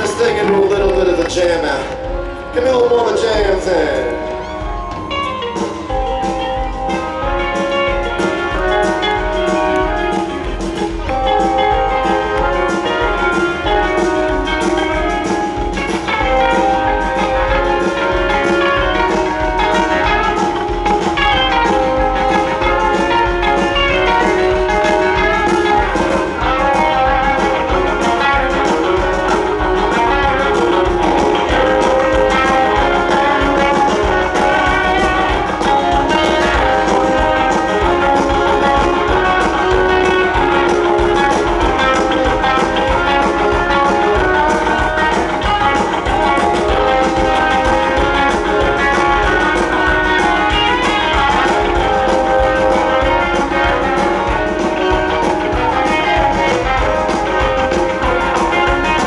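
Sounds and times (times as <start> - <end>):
guitar: 0.0 - 59.0
live band playing: 0.0 - 59.0.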